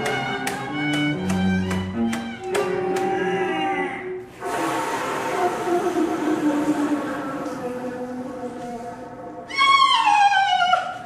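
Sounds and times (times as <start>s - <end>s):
hissing wash: 4.3s - 8.2s.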